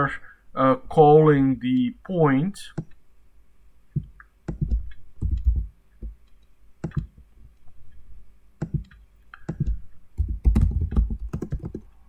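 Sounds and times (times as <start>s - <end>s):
typing on computer keyboard: 4.5s - 5.7s, 8.6s - 11.9s.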